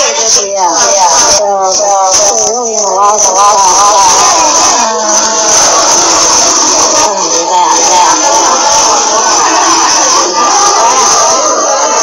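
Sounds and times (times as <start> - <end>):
person singing over music: 0.0 - 12.0.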